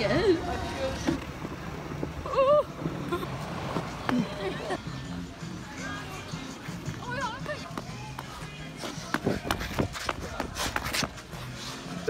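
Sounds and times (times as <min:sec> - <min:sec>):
ice skates scraping on ice: 0:07.4 - 0:12.0.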